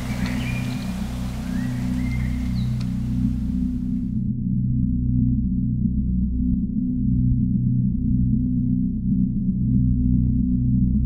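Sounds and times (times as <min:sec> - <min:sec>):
high bird chirps: 0:00.0 - 0:03.7
faint outdoor hiss: 0:00.0 - 0:04.1
music with low drone: 0:00.0 - 0:11.0.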